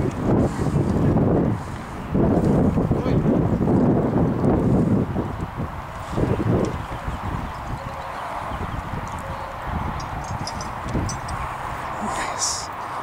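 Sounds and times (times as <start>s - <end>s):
pony hooves cantering: 5.3s - 12.1s.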